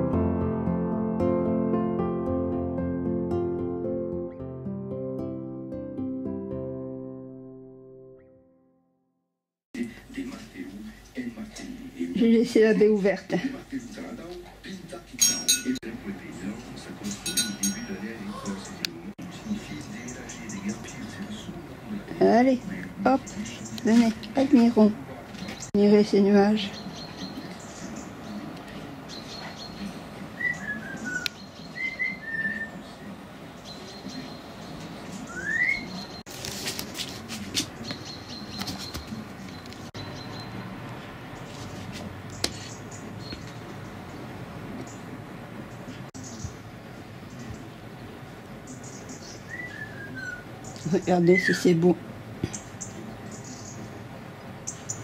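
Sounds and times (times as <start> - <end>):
light metallic clinking: 15.2 - 15.8, 17.2 - 18.1
bird calls: 26.5 - 36.2, 37.7 - 40.6, 42.3 - 44.2, 45.7 - 46.6, 48.4 - 51.8, 52.4 - 54.0, 54.6 - 55.0.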